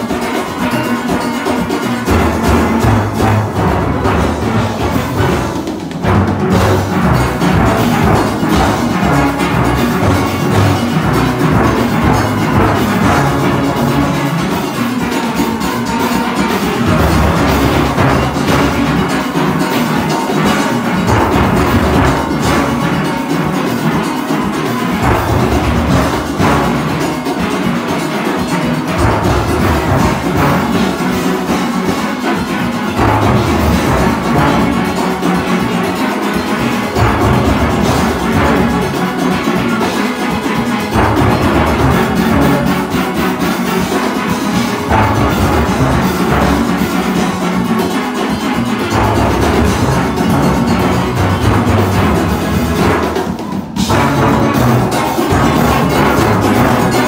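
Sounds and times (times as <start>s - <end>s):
steel orchestra playing: 0.0s - 57.0s
bass steel pans struck: 1.2s - 24.0s, 32.7s - 39.8s.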